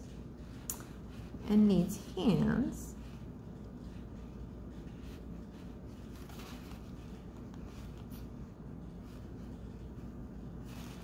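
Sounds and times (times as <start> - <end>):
low room hum: 0.0 - 11.0
paper and pipe cleaner rustling: 0.0 - 11.0.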